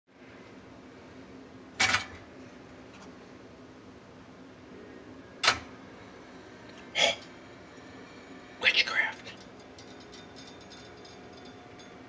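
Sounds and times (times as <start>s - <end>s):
faint steady hum: 0.1s - 12.0s.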